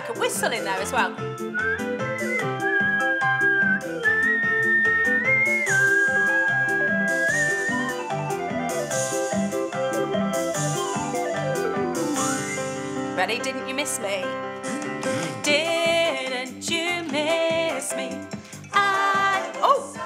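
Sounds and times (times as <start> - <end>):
whistle-like high lead: 1.6 - 12.9.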